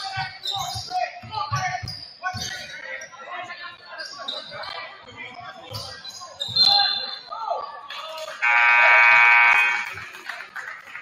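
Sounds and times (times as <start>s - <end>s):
referee's whistle: 6.4s - 7.3s, 8.4s - 9.8s
scoreboard horn blast: 8.4s - 9.9s.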